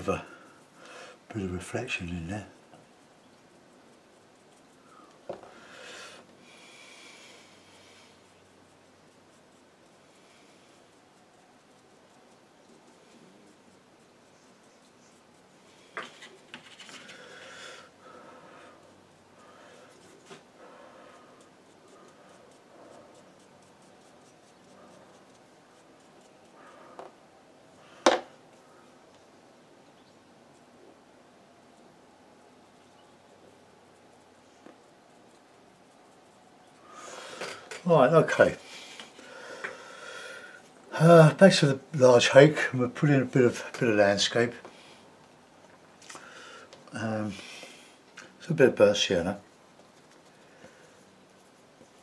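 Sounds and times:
brush strokes on paper: 0.0s - 29.6s, 30.2s - 52.0s
rubbing and scraping: 10.7s - 17.6s
sharp knock: 28.0s - 28.3s.

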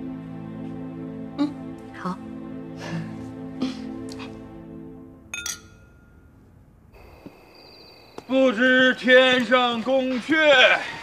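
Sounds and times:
wine glasses clinking: 5.3s - 6.3s.

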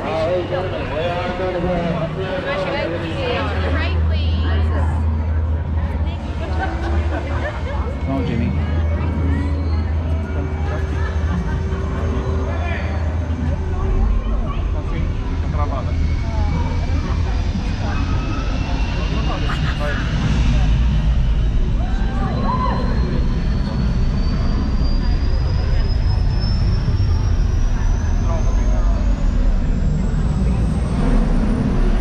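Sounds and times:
loud rumble with rising whine: 0.0s - 32.0s.

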